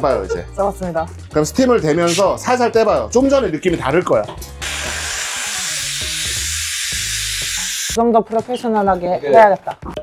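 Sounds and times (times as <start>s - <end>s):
steam gun hissing: 4.6s - 8.0s.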